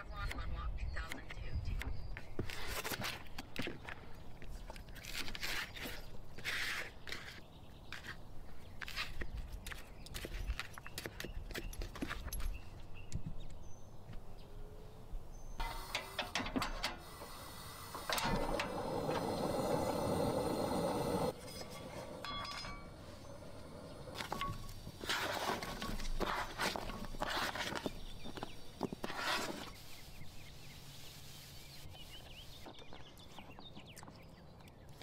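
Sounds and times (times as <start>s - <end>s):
gas stove igniter click: 15.6s - 21.3s
gas stove hissing: 15.6s - 26.6s, 29.6s - 32.6s.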